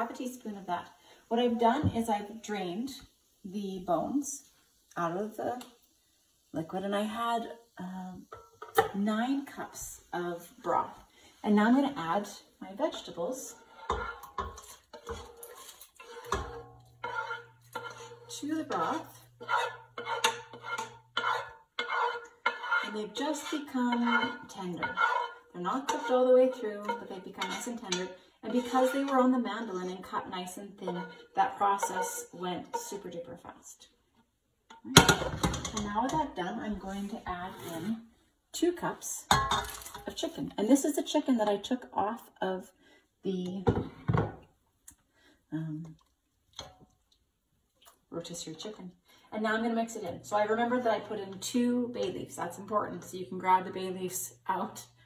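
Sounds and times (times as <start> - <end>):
utensil scraping a skillet: 0.1 - 33.4, 34.7 - 38.2
utensil clinking on pan: 13.8 - 29.2.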